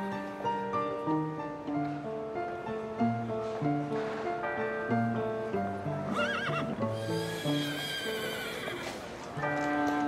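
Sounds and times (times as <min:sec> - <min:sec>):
background music: 0:00.0 - 0:10.0
horse whinnying: 0:06.1 - 0:09.0.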